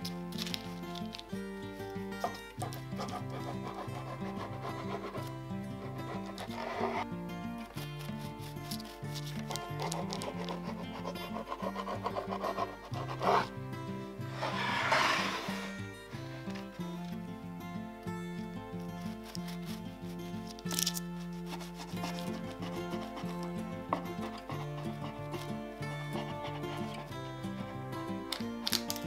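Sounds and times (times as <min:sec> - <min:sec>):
background music: 0:00.0 - 0:29.0
knife cutting through cake: 0:02.2 - 0:07.1, 0:07.8 - 0:13.5, 0:14.3 - 0:15.8, 0:20.6 - 0:27.1.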